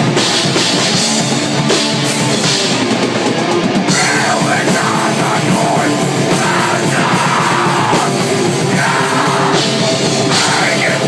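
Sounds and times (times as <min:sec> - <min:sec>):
distorted electric guitars: 0:00.0 - 0:11.0
pounding drum kit: 0:00.0 - 0:11.0.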